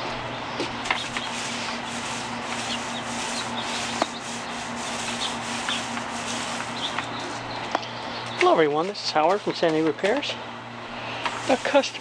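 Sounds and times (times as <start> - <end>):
paint roller rasping: 0.8 - 7.5, 8.4 - 10.2, 11.1 - 12.0.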